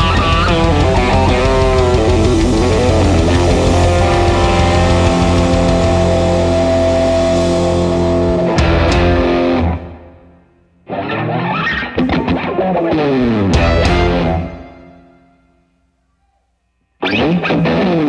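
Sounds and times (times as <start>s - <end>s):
rock band playing: 0.0s - 15.5s
solo electric guitar sliding lines: 0.0s - 15.6s
electric guitar chord ringing: 0.0s - 15.7s.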